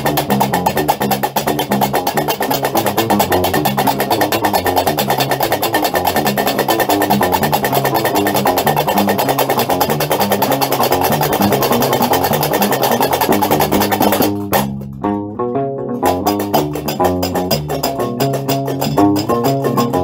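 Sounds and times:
metal castanets clattering: 0:00.0 - 0:14.8, 0:16.2 - 0:20.0
bass lute plucking low riff: 0:00.0 - 0:20.0.

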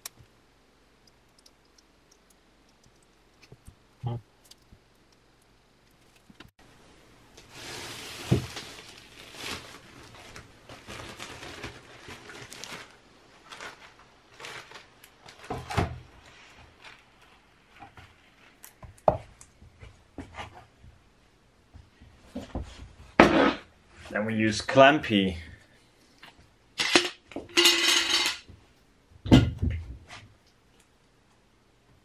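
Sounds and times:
plastic sheet rustling: 0:07.4 - 0:18.8.

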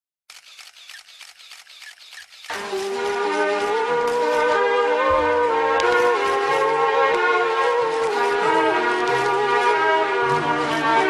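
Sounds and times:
camera shutters clicking: 0:00.3 - 0:02.7.

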